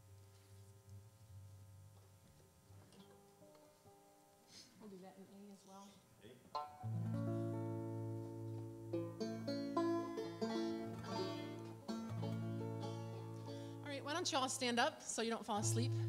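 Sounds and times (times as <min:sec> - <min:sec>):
banjo and guitars playing chords: 0:06.6 - 0:14.6, 0:15.5 - 0:16.0.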